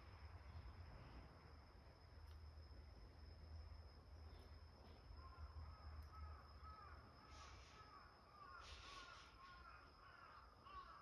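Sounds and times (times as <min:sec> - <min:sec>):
faint bird calls: 0:04.3 - 0:11.0.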